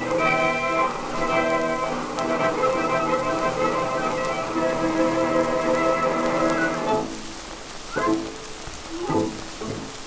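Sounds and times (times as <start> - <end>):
record hiss and crackle: 0.0 - 10.0.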